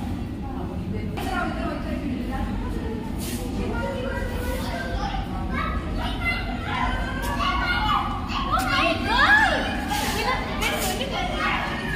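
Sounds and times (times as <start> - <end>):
children chattering: 0.0 - 11.9.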